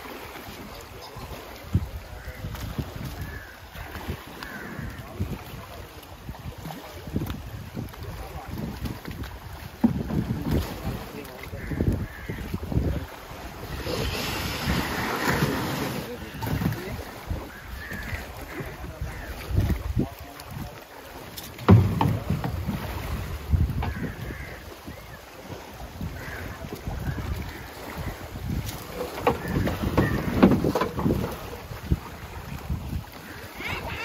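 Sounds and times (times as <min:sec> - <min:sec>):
water splashing around canoe: 0:00.0 - 0:34.0
wind buffeting microphone: 0:00.6 - 0:20.8, 0:21.5 - 0:34.0
knocks and thuds: 0:21.6 - 0:22.8.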